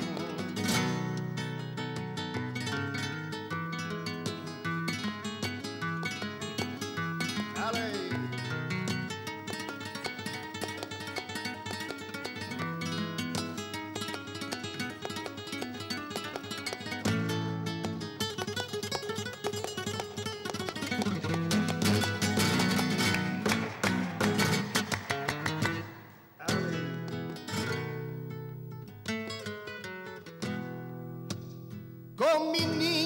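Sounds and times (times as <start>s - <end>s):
flamenco guitar playing: 0.0s - 33.0s.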